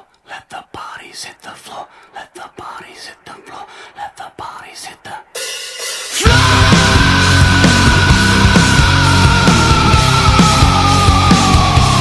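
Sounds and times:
person whispering: 0.0s - 5.4s.

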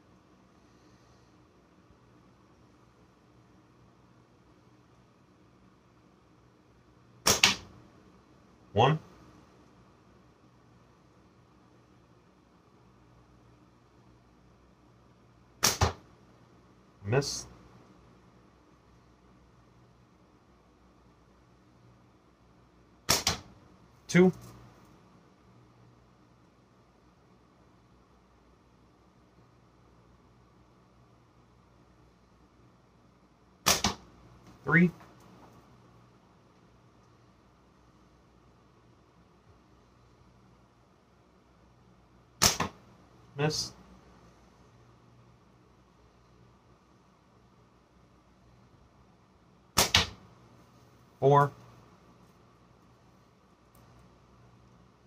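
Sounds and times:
slingshot cracks: 7.2s - 7.7s, 15.6s - 16.0s, 23.1s - 23.5s, 33.6s - 34.1s, 42.4s - 42.8s, 49.8s - 50.2s.

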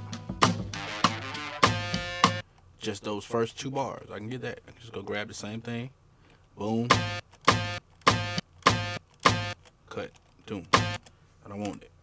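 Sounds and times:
repeating sharp pitched note: 6.9s - 9.6s, 10.7s - 11.0s.

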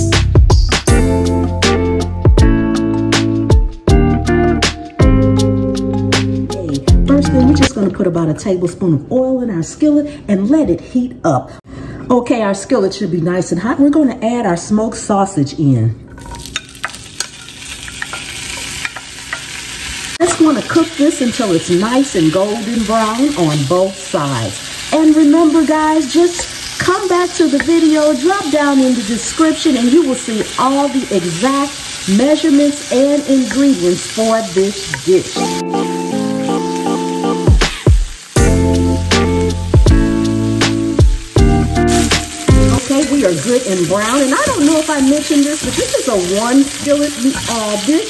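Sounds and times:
background music with drums: 0.0s - 7.7s, 36.6s - 43.1s
sausage slices tapping skillet: 16.2s - 19.6s, 26.2s - 28.4s
sausage sizzling in hot oil: 16.2s - 48.0s.

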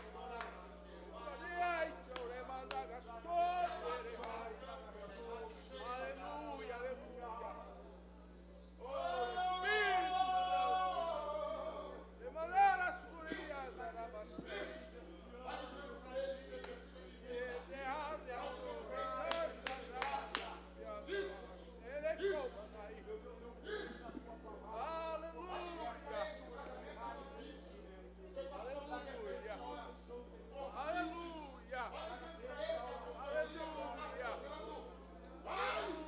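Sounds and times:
sharp hand claps: 0.0s - 0.7s, 2.0s - 3.0s, 19.2s - 20.6s
raised voices in a hall: 0.0s - 36.0s.

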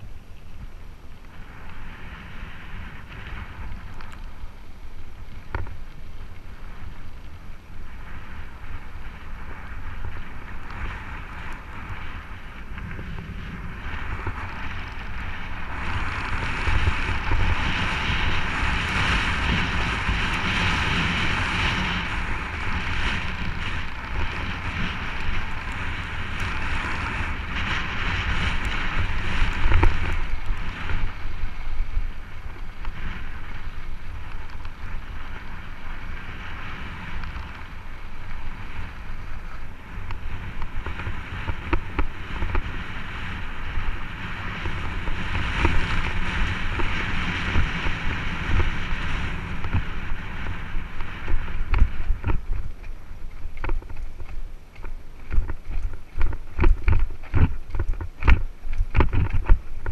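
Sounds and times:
wind buffeting microphone: 0.0s - 59.9s
tyres rolling on gravel: 8.1s - 59.9s.

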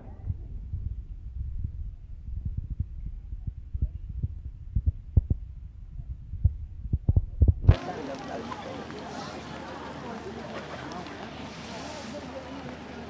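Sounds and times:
irregular thumps: 0.0s - 7.8s
wind buffeting microphone: 0.0s - 8.3s.

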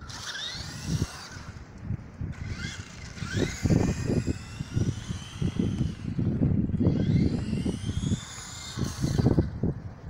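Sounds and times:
rc car electric motor whining: 0.0s - 1.7s, 2.3s - 9.8s.

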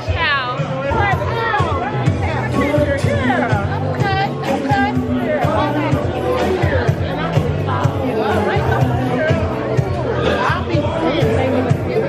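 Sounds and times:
chatter of many people: 0.0s - 12.0s
music with steady bass line: 0.0s - 12.0s.

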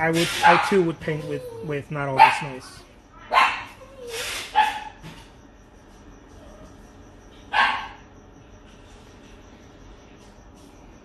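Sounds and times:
dog barking: 0.4s - 1.0s, 2.1s - 2.6s, 3.2s - 3.8s, 4.5s - 5.0s, 7.5s - 8.1s.

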